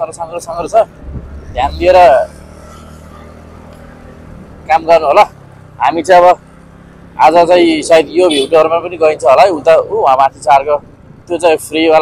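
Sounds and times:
motorbike engine hum: 0:00.0 - 0:12.0
voice close to microphone: 0:01.5 - 0:02.3.

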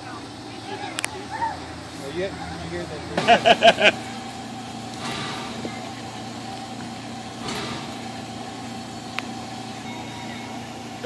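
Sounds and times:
faint constant whine: 0:00.0 - 0:11.0
steam hiss: 0:03.5 - 0:11.0.

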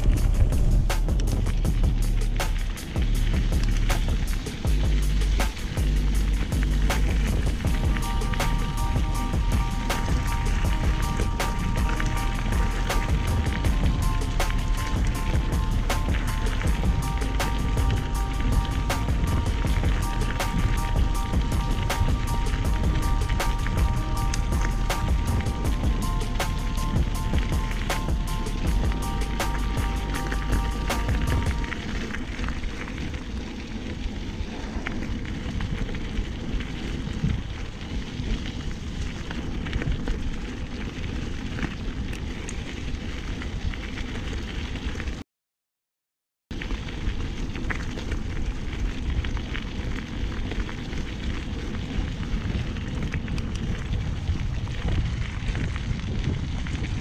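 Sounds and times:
steady tones: 0:00.0 - 0:32.2
bicycle tyres rolling on gravel: 0:00.0 - 0:45.2, 0:46.5 - 0:57.0
bike rattling and clicking: 0:00.0 - 0:45.2, 0:46.6 - 0:57.0
wind noise on microphone: 0:00.0 - 0:45.2, 0:46.5 - 0:57.0.

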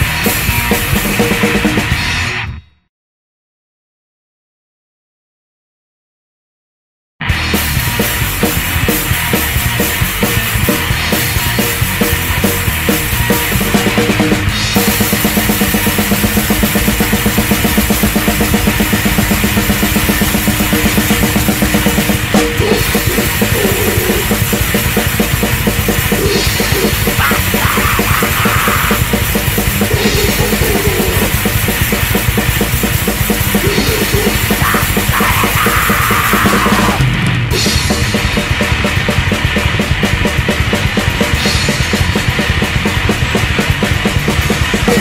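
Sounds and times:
fast drum-kit beats: 0:00.0 - 0:02.4, 0:07.2 - 0:45.0
distorted electric guitar: 0:00.0 - 0:02.6, 0:07.2 - 0:45.0
bass guitar: 0:00.0 - 0:02.9, 0:07.2 - 0:45.0.

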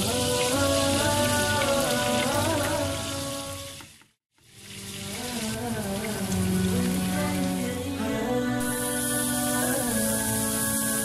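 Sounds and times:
background music with melody: 0:00.0 - 0:03.9, 0:04.8 - 0:11.0
kebabs sizzling in oil: 0:00.0 - 0:08.0, 0:08.6 - 0:11.0.

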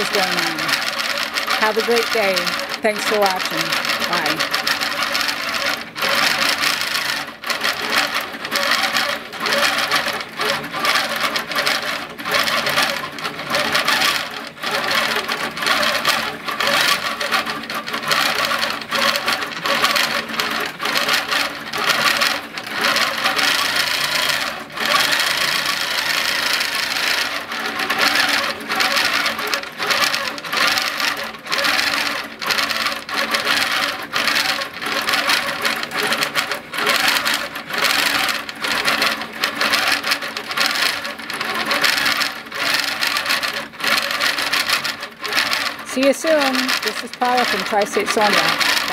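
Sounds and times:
quilting machine stitching: 0:00.0 - 0:48.9.

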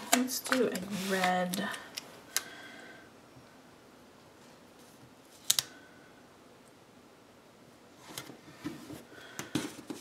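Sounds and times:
sticker sheet rustling: 0:00.0 - 0:01.8.

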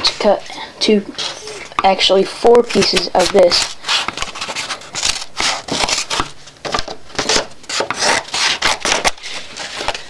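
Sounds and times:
card rustling: 0:01.2 - 0:10.0.

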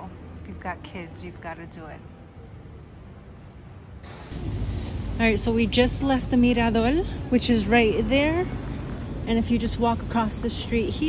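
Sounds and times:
faint street traffic: 0:00.0 - 0:11.0
low background noise: 0:00.0 - 0:11.0.

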